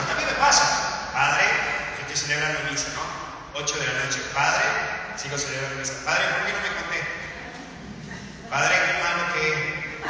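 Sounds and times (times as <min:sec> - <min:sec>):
man preaching into microphone: 0:00.0 - 0:07.3, 0:08.4 - 0:10.0.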